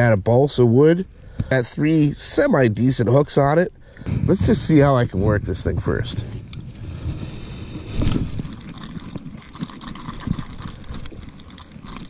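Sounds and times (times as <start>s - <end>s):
fishing reel gears clicking: 7.3s - 12.0s.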